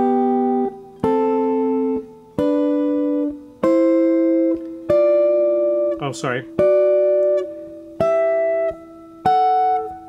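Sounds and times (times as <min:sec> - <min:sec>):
electric guitar plucked intervals: 0:00.0 - 0:10.0.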